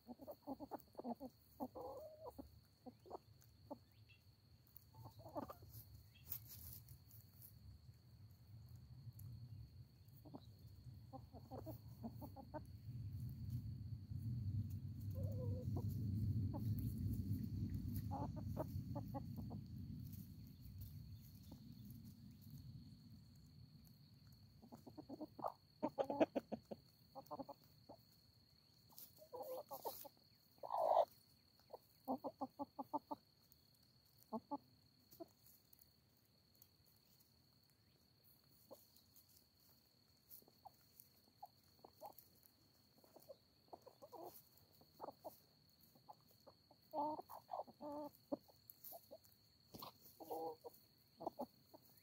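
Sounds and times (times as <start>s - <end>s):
hens clucking: 0.0s - 6.8s, 10.0s - 13.7s, 14.6s - 23.5s, 24.1s - 35.8s, 37.8s - 52.0s
low rumble: 12.8s - 21.5s.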